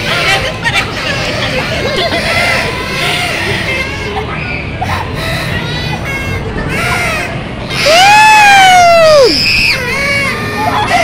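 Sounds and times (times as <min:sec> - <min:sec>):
children shouting: 0:00.0 - 0:11.0
shrill squeal: 0:07.7 - 0:11.0.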